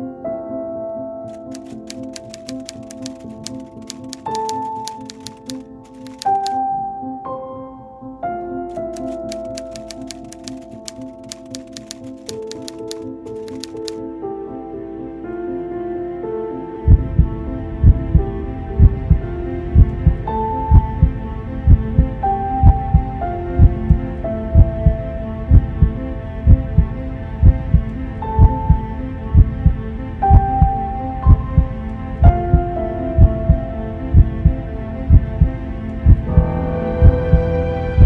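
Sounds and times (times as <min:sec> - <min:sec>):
slow music with held notes: 0:00.0 - 0:38.0
heartbeat double thump: 0:16.9 - 0:18.2, 0:18.8 - 0:19.2, 0:19.8 - 0:24.0, 0:29.4 - 0:32.6, 0:36.1 - 0:37.5.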